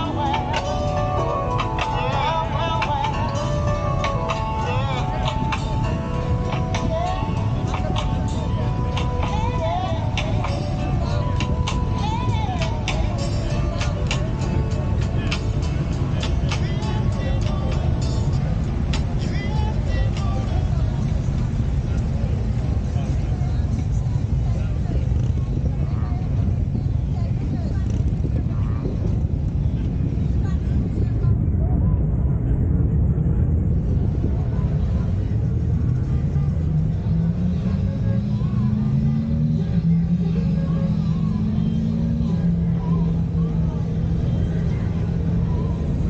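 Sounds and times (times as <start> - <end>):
engine rumbling and revving: 0.0 - 46.0.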